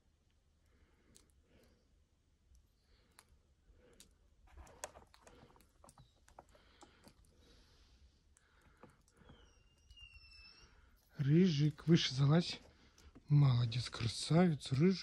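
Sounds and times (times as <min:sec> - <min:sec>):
thin whistle-like tone: 0:09.2 - 0:11.3.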